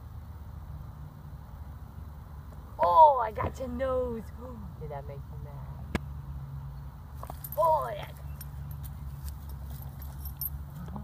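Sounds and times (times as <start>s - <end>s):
chain collar jingling: 7.2s - 11.0s.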